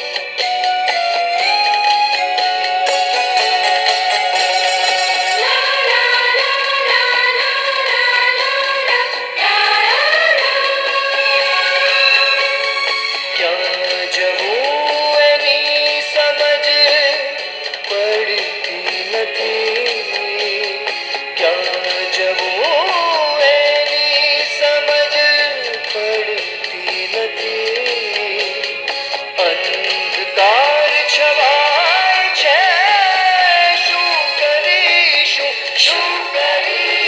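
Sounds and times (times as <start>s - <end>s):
musical accompaniment: 0.0s - 37.0s
person singing: 0.0s - 37.0s.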